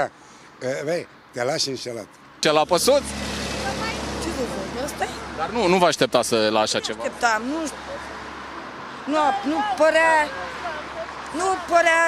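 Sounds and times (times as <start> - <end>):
vehicle passing by: 2.4 - 12.0.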